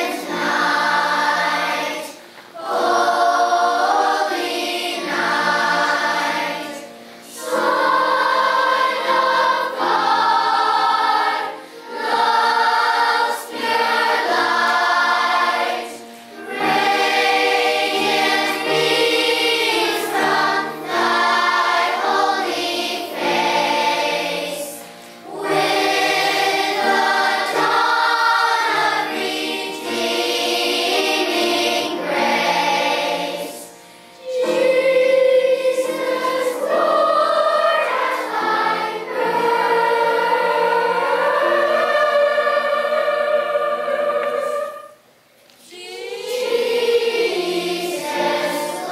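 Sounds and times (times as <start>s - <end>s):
children's choir singing: 0.0s - 48.9s.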